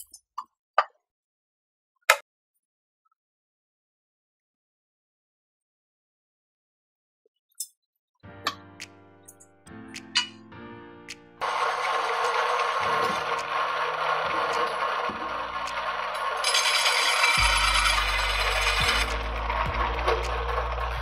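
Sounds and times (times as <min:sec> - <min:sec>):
background music: 0:08.3 - 0:21.0
hole saw grinding into steel: 0:11.4 - 0:21.0.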